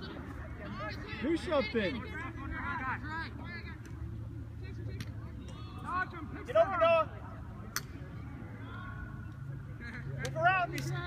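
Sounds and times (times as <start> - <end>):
lacrosse stick clack: 7.7 - 8.0.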